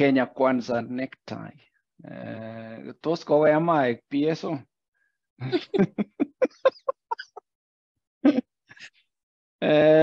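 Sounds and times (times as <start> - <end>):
person laughing: 5.4 - 7.4, 8.2 - 8.4.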